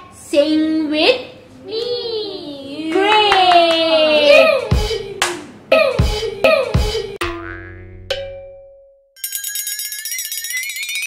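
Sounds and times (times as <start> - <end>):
cartoon springy boings: 7.2 - 9.0.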